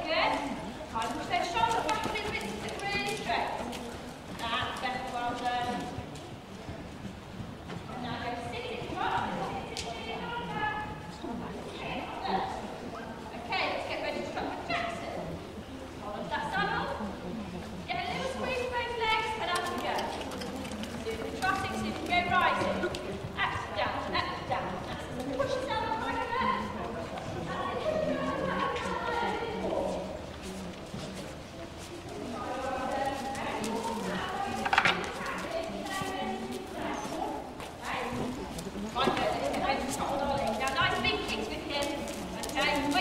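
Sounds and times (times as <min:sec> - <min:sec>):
hooves clip-clopping: 0:00.0 - 0:43.0
people talking indistinctly: 0:00.0 - 0:43.0
hoofbeats on soft ground: 0:00.3 - 0:12.7, 0:16.0 - 0:43.0.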